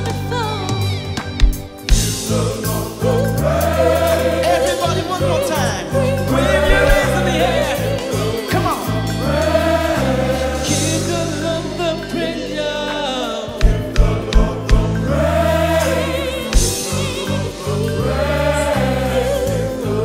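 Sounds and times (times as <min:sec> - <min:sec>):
live band: 0:00.0 - 0:20.0
gospel choir singing: 0:01.7 - 0:20.0.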